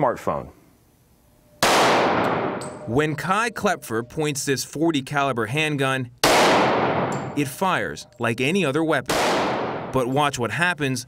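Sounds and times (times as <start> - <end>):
handgun shot with echo: 1.6 - 2.9, 6.2 - 7.4, 9.1 - 9.9.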